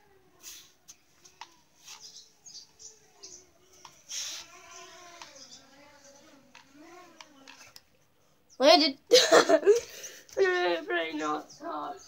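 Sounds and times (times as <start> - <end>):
faint bird chirping: 0.0 - 9.0, 9.8 - 12.0.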